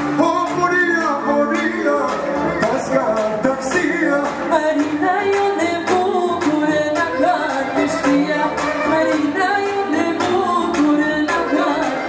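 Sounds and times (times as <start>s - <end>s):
amplified band with steady beat: 0.0s - 12.0s
woman singing into microphone: 4.2s - 12.0s.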